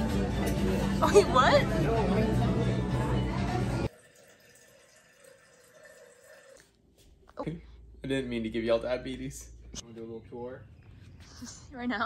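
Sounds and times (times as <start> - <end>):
background music: 0.0 - 3.9
restaurant voices: 0.0 - 3.9.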